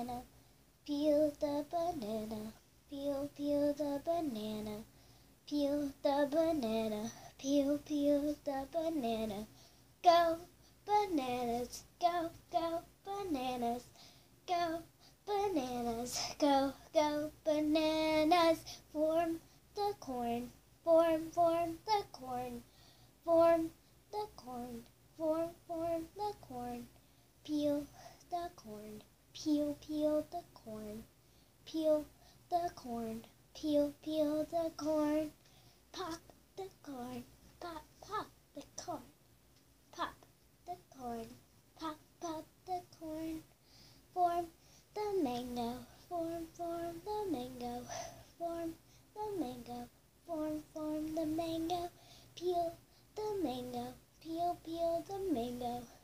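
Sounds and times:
girl singing unaccompanied: 0.0s - 56.0s.

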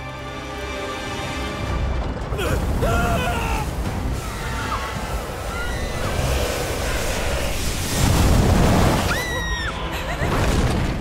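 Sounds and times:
deep steady rushing noise: 1.2s - 9.2s.

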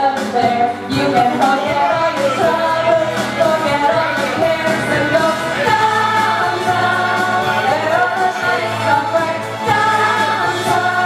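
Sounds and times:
karaoke backing track: 0.0s - 11.0s
two women singing a duet: 0.0s - 11.0s.

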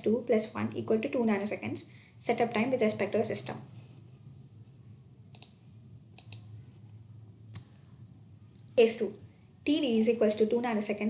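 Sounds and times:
faint low hum: 0.0s - 11.0s
computer clicks: 5.3s - 6.5s.

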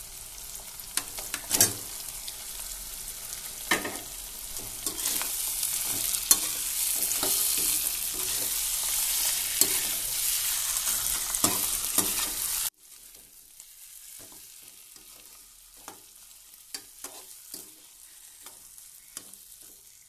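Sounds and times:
fish sizzling in a pan: 0.0s - 20.0s.

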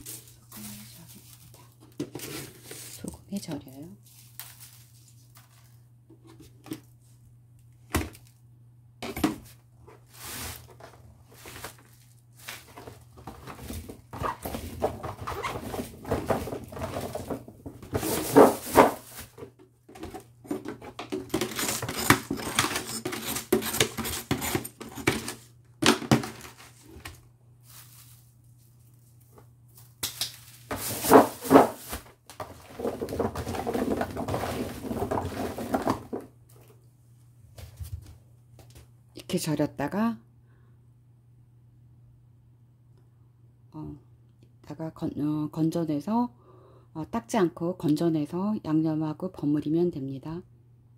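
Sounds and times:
radish cubes clattering in plastic basin: 10.2s - 24.1s, 30.4s - 36.3s.

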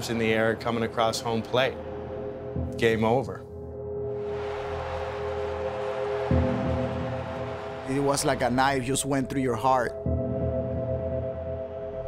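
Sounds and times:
slow music of held chords: 1.8s - 8.0s, 9.3s - 12.0s.

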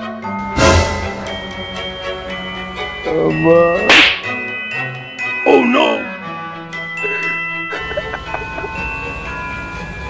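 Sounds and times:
background music with chiming tones: 0.0s - 10.0s
sharp slap: 3.9s - 4.4s.

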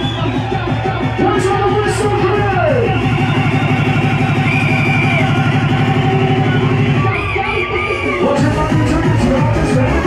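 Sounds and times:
hardcore dance music: 0.0s - 10.0s.

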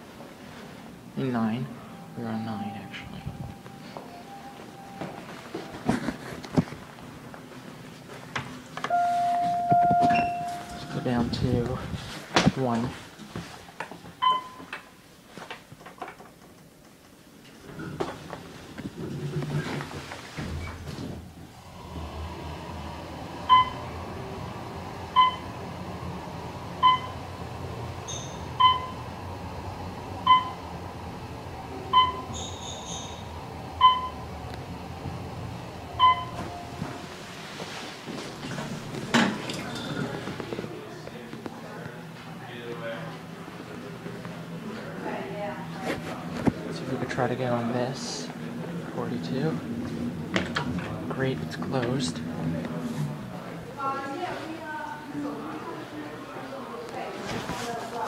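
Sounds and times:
elevator low ride hum: 0.0s - 15.3s, 16.2s - 58.0s
short electronic elevator beep: 1.8s - 5.4s, 8.9s - 11.2s, 14.2s - 14.7s, 23.5s - 23.8s, 26.8s - 27.2s, 28.1s - 29.0s, 31.9s - 33.2s, 33.8s - 34.2s, 35.9s - 36.8s.

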